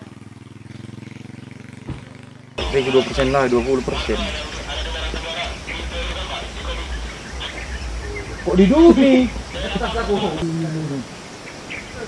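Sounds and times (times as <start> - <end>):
engine idling: 0.0 - 10.4.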